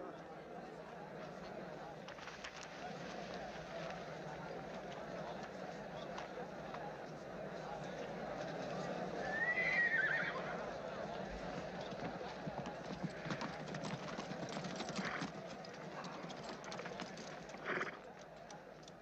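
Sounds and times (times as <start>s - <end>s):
murmur of voices: 0.0s - 19.0s
horse whinnying: 9.3s - 10.5s
hooves clip-clopping: 11.0s - 19.0s.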